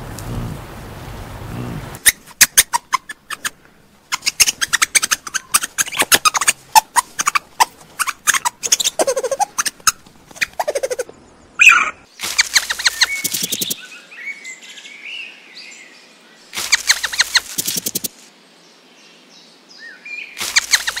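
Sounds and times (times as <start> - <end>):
bird sharp squeak: 2.0 - 13.8, 16.6 - 18.1, 20.4 - 21.0
bird fast trill: 4.1 - 13.8, 16.6 - 18.1, 20.4 - 21.0
faint bird chirps: 10.6 - 15.3.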